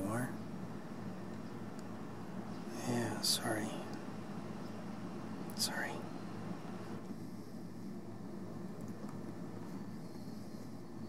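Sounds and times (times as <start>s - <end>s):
low background hum with hiss: 0.0s - 11.0s.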